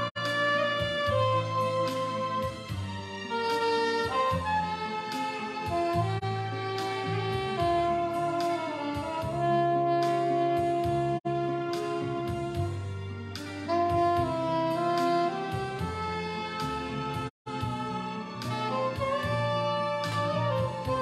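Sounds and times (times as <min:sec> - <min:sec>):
backing track with bass and drums: 0:00.0 - 0:21.0
soprano saxophone melody: 0:00.0 - 0:21.0.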